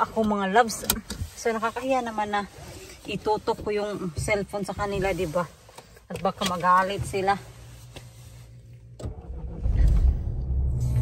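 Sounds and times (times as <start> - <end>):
car engine starting and running: 5.0 - 11.0
ignition click: 9.0 - 11.0.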